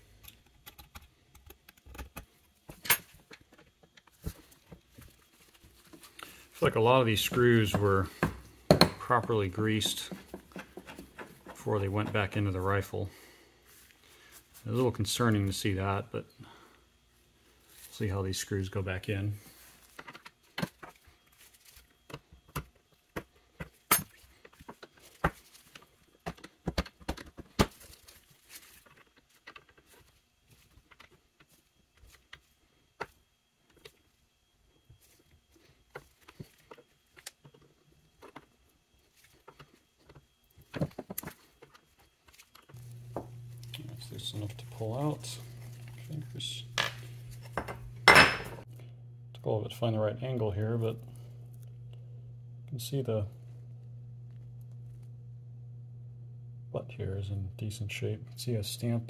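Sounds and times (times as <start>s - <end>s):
steady low hum: 4.2s - 19.9s, 42.6s - 59.0s.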